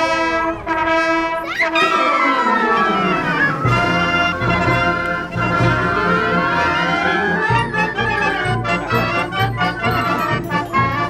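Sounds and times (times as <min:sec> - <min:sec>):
wind band holding chord: 0:00.0 - 0:11.0.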